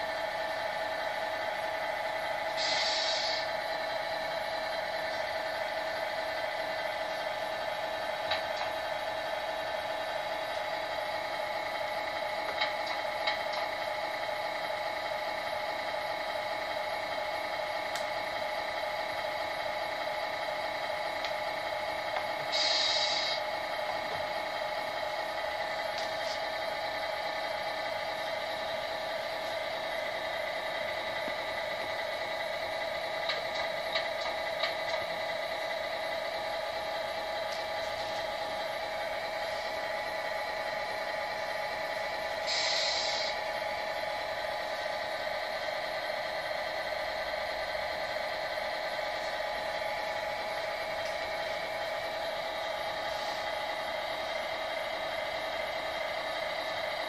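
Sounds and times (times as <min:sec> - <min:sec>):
diesel engine idle through speaker: 0:00.0 - 0:57.0
air brake hiss: 0:02.6 - 0:03.5, 0:22.5 - 0:23.4, 0:42.4 - 0:43.4.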